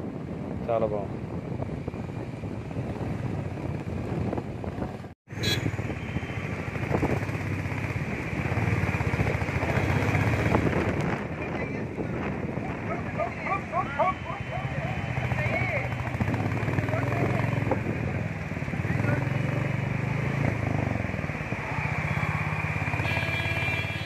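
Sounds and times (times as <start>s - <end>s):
wind on microphone: 0.0s - 14.4s
road traffic rumble: 0.0s - 24.0s.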